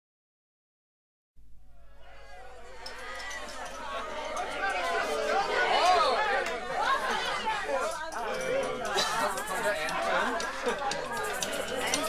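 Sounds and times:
people talking over one another: 0:02.0 - 0:12.0.

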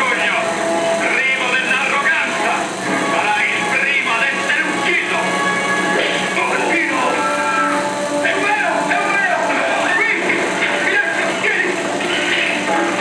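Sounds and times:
orchestral music: 0:00.0 - 0:13.0.

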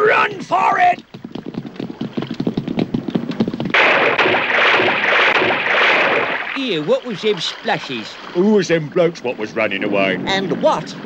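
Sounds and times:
running footsteps on wooden deck: 0:00.0 - 0:05.6
loud rushing splash: 0:03.7 - 0:08.4.

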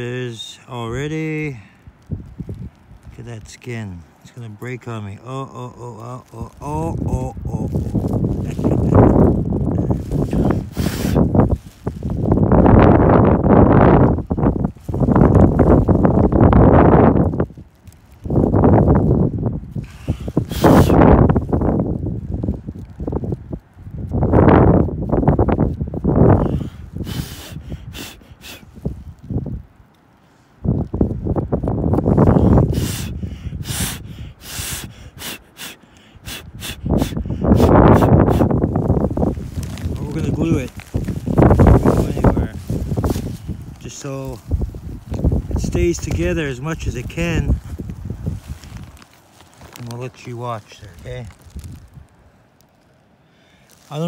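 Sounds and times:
stones scraping against plastic bag: 0:07.8 - 0:12.4, 0:38.8 - 0:52.0, 0:53.6 - 0:54.0.

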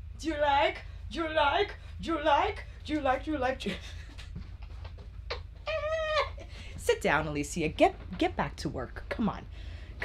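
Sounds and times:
low steady hum: 0:00.0 - 0:10.0
woman squealing: 0:05.6 - 0:06.5.

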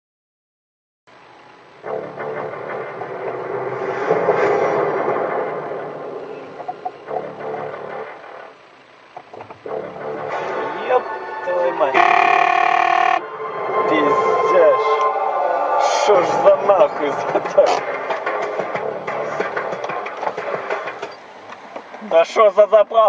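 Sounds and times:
indistinct voices: 0:10.4 - 0:17.9
loud chord of held tones: 0:10.7 - 0:16.3
car radio music: 0:11.5 - 0:13.2.

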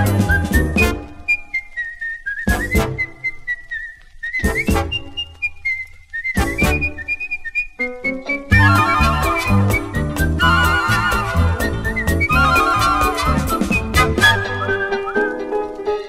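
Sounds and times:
swing big band chords: 0:00.0 - 0:01.2, 0:02.5 - 0:03.1, 0:04.4 - 0:05.1, 0:06.4 - 0:06.9, 0:08.4 - 0:16.0
whistled melody: 0:00.0 - 0:16.0.

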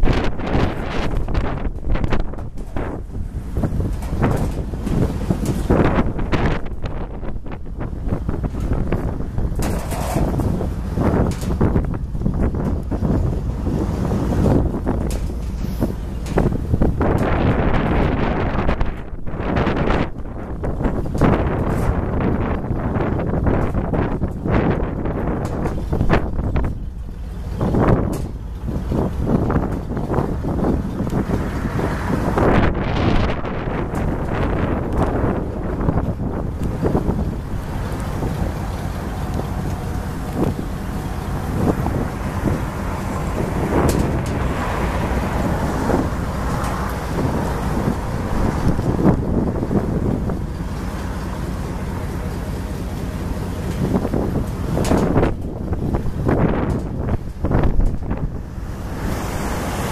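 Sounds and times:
gusty wind buffeting microphone: 0:00.0 - 0:59.9.

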